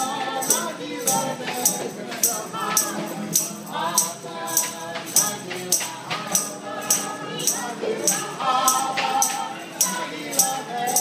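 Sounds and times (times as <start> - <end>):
acoustic guitar: 0.0 - 11.0
jingling percussion beat: 0.0 - 11.0
voices singing together: 0.0 - 11.0.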